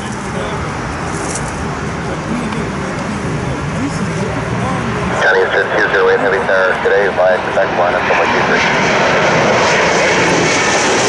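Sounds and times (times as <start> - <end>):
distant jet engines rumbling: 0.0 - 11.0
jet engine whine: 0.0 - 11.0.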